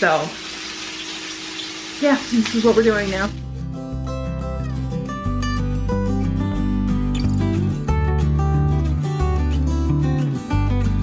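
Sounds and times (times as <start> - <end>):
hamburgers sizzling in a pan: 0.0 - 3.4.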